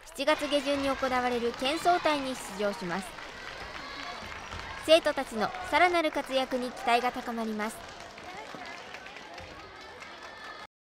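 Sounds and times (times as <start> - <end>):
light clapping: 0.0 - 10.7.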